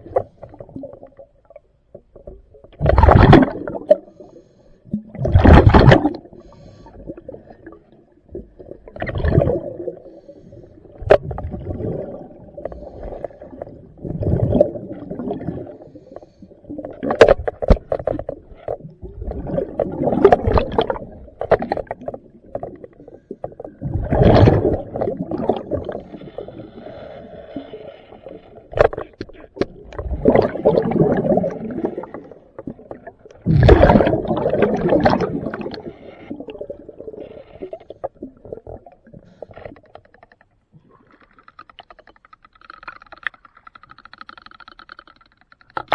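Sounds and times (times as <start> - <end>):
underwater bubbling and rumbling: 0.0 - 45.9
sharp clicks and knocks: 39.5 - 45.9.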